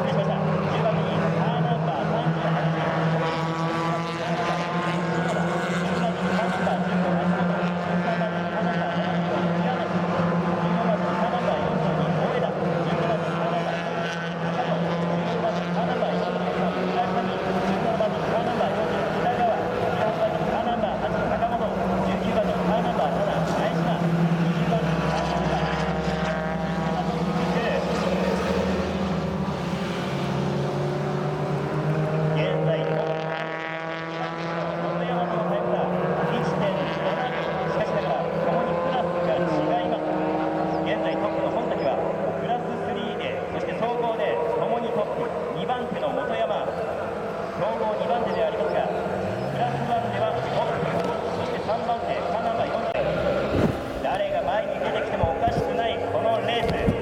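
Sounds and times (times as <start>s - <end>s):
race car engines passing: 0.0s - 57.0s.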